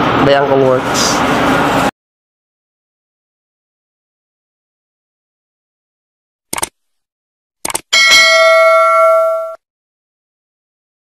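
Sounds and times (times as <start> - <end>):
notification bell ringing: 8.0 - 9.6.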